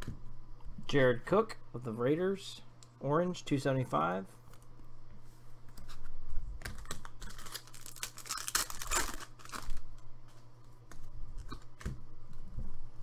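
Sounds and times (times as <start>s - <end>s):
steady low hum: 0.0s - 13.0s
trading cards rustling: 6.6s - 11.9s.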